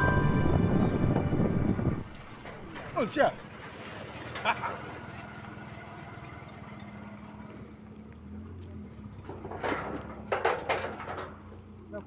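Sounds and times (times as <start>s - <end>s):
wind noise: 0.0s - 3.1s
road noise: 0.0s - 12.0s.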